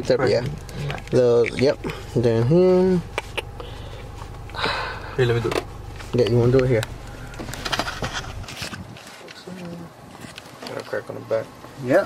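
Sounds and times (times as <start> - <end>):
low hum: 0.0 - 9.0
phone handling rustles and knocks: 5.4 - 9.4.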